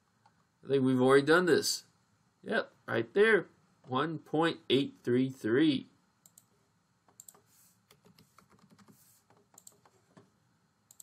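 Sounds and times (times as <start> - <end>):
computer keyboard clicks: 7.1 - 10.0.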